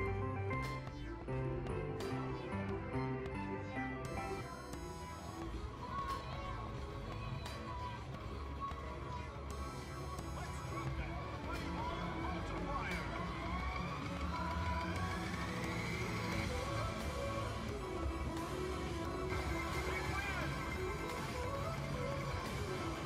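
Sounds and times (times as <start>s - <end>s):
slot machine tones and jingles: 15.5s - 23.0s.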